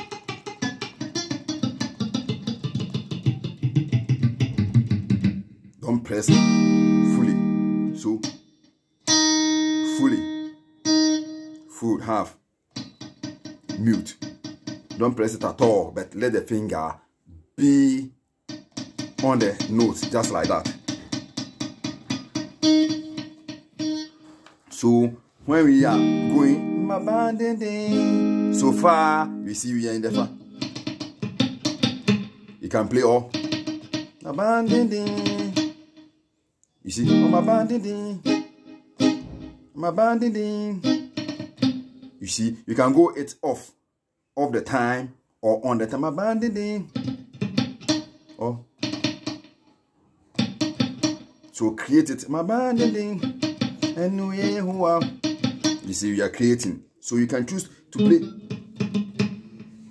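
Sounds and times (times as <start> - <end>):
muted electric guitar plucks: 0.0 - 8.4, 9.1 - 11.8, 12.8 - 16.2, 18.5 - 24.2, 25.5 - 36.1, 36.9 - 42.2, 46.2 - 49.7, 50.3 - 59.9.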